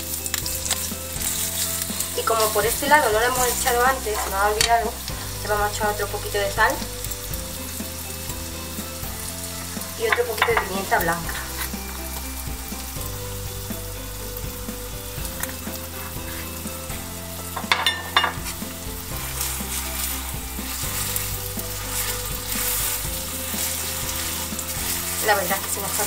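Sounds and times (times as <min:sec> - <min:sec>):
burgers sizzling in oil: 0:00.0 - 0:26.0.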